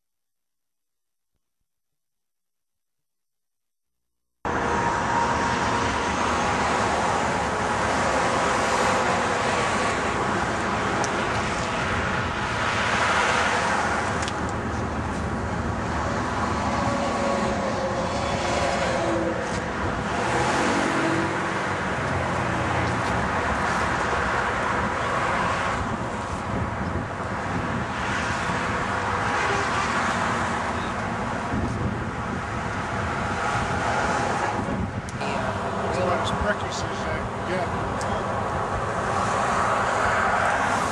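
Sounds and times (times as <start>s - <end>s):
road traffic noise: 4.5s - 40.9s
vehicles passing: 4.5s - 40.9s.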